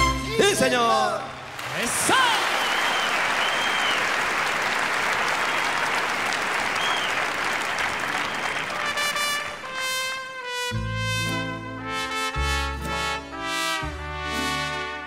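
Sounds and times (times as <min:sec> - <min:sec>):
trumpets holding notes: 0:00.0 - 0:00.8, 0:08.7 - 0:15.0
cheering shouts: 0:00.4 - 0:09.2
audience applauding: 0:01.3 - 0:09.9.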